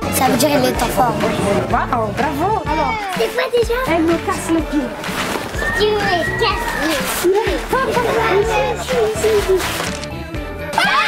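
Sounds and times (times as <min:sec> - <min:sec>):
background music: 0:00.0 - 0:11.0
girls chattering excitedly: 0:00.1 - 0:05.0, 0:05.6 - 0:09.8.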